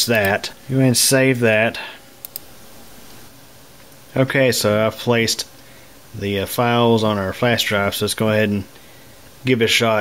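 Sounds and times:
low room hiss: 0.0s - 10.0s
computer mouse clicks: 0.1s - 0.4s, 2.2s - 2.5s.

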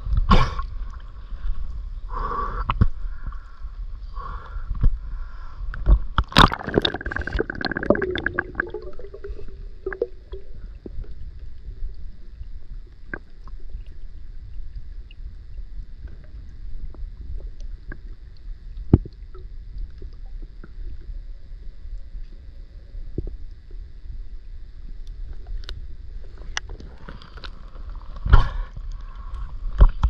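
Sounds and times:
muffled underwater rumble: 0.0s - 30.0s
underwater splashing and bubbling: 5.8s - 22.5s.

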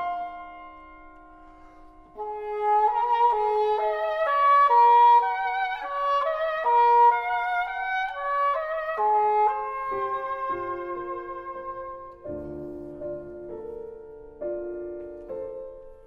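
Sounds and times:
english horn melody: 0.0s - 13.8s.

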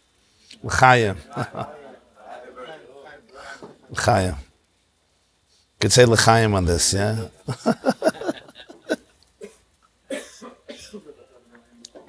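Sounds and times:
person coughing: 9.4s - 11.2s
throat clearing: 9.4s - 11.2s.

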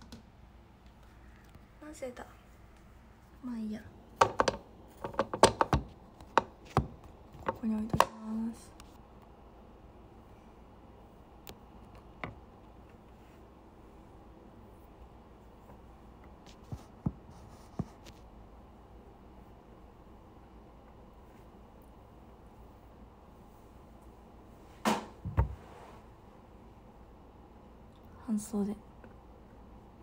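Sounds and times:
sharp taps and knocks: 4.2s - 8.2s
dull thumps against phone: 24.8s - 25.6s.

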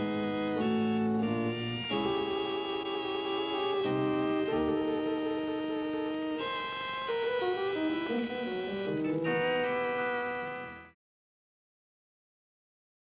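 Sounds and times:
organ playing sustained chords: 0.0s - 11.0s.

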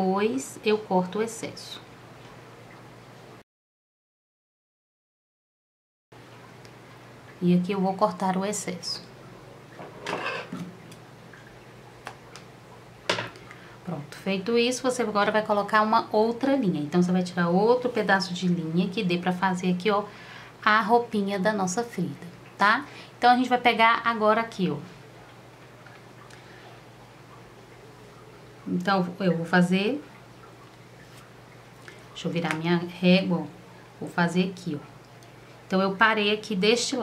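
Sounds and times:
low steady hum: 0.0s - 3.4s, 6.2s - 37.0s
faint light tick: 35.0s - 35.4s.

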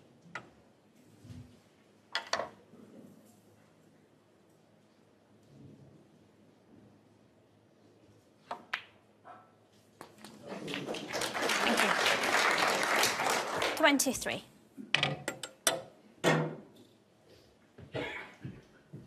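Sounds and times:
audience applause: 10.4s - 14.3s.

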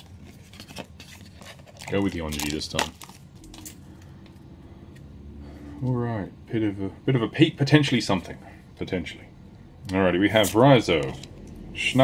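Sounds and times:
trading cards rustling: 0.0s - 5.1s
low room hum: 0.0s - 12.0s.

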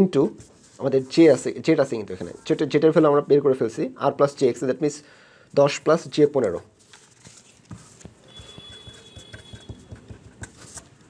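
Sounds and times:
pen tapping on paper: 7.7s - 10.6s.

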